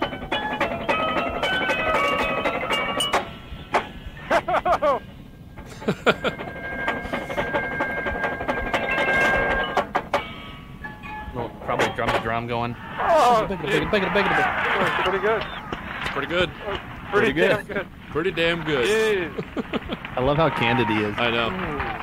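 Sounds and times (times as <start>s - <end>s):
ringing mallet keyboard notes: 0.0s - 4.6s, 5.8s - 12.5s
drum corps percussion: 0.0s - 5.0s, 11.3s - 22.0s
person laughing: 4.2s - 5.0s, 5.6s - 6.4s, 18.8s - 20.3s.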